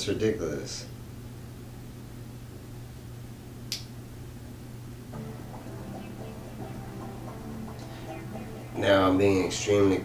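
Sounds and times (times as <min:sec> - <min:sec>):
low room hum: 0:00.0 - 0:10.0
faint background music: 0:05.1 - 0:10.0.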